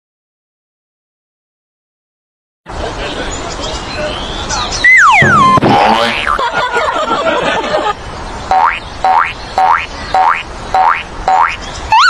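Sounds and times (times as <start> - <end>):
sliding up-and-down tone: 4.8 - 6.5
cartoon boing spring effect: 4.9 - 6.4.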